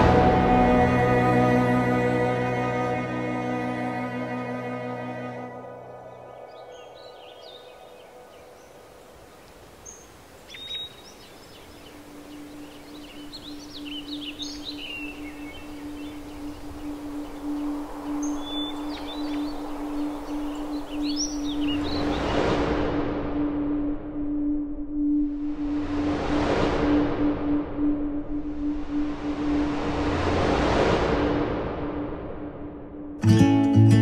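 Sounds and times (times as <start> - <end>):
sustained low musical note: 0.0 - 6.4
birds chirping and calling: 10.5 - 22.3.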